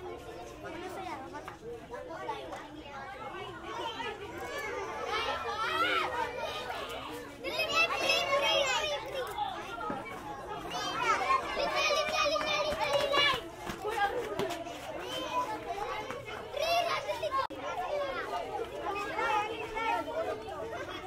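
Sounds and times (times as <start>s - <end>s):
children talking and calling out: 0.0s - 21.0s.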